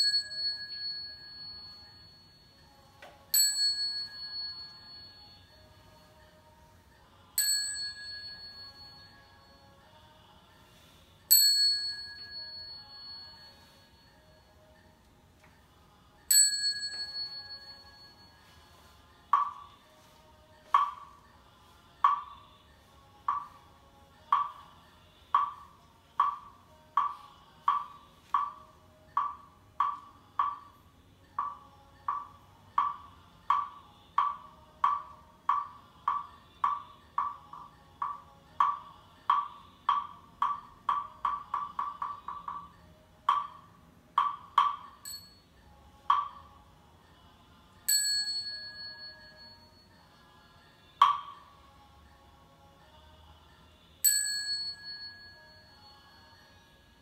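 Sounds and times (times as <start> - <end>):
bell ringing: 0.0 - 6.1, 7.4 - 9.7, 11.3 - 14.5, 16.3 - 19.5, 44.9 - 45.5, 47.9 - 50.0, 54.1 - 56.5.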